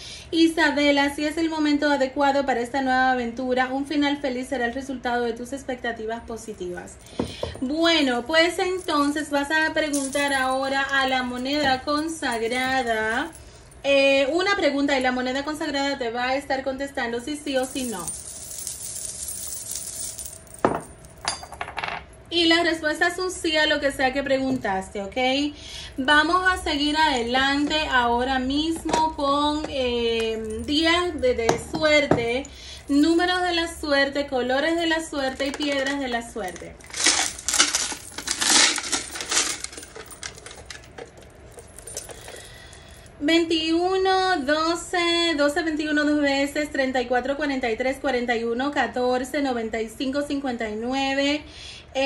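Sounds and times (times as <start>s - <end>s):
coin clinking on wooden table: 17.6s - 22.0s
dice rattling in plastic box: 36.6s - 41.2s.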